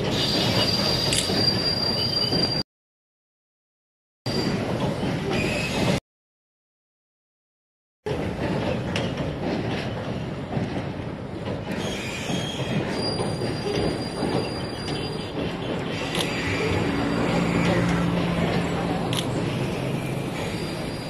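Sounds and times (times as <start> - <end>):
train rumbling across bridge: 0.0 - 2.6, 4.3 - 6.0, 8.1 - 21.0
high-pitched wheel squeal: 0.1 - 2.6, 11.8 - 18.2, 19.7 - 21.0.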